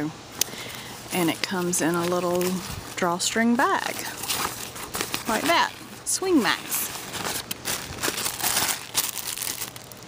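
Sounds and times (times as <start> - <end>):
bag and plastic package rustling: 0.6 - 10.0.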